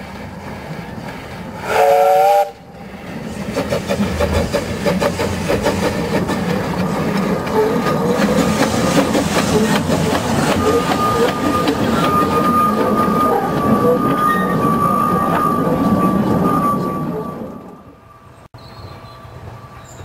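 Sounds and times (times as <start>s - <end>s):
steam locomotive exhaust beats: 0.0s - 17.9s
steam whistle blast: 1.6s - 2.7s
wheels clattering on rail: 3.2s - 17.9s.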